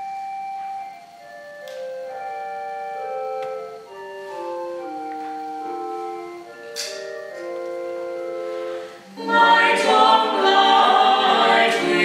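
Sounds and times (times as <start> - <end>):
sung consonant hiss: 0.0 - 12.0
vocal group singing a chord: 8.3 - 12.0.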